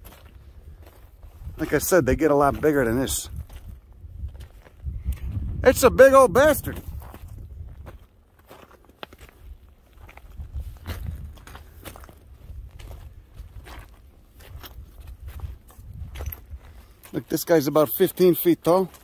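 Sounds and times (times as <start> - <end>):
wind rumble on microphone: 0.0 - 8.1, 9.4 - 16.9
footsteps crunching on scree: 0.0 - 19.0.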